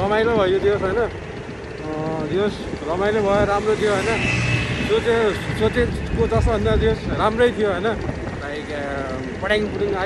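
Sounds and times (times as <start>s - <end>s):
road and wind rumble: 0.0s - 10.0s.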